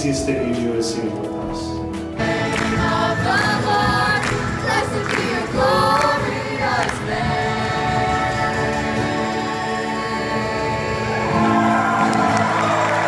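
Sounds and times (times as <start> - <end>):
choir singing a worship song: 2.1 - 13.0
hands clapping along: 2.2 - 9.0, 11.2 - 13.0.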